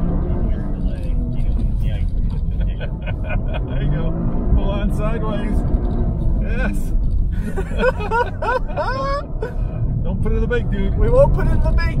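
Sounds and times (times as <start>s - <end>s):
car cabin rumble: 0.0s - 12.0s
men laughing and whooping: 2.4s - 3.9s, 7.3s - 9.7s.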